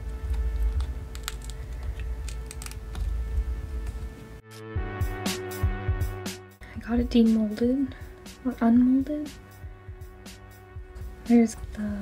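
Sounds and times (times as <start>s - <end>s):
silicone mold clicking and crackling: 0.2s - 3.2s.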